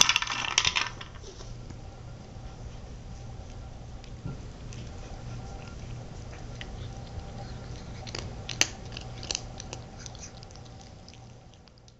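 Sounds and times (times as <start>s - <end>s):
kibble rattling in plastic toy: 0.0s - 1.2s.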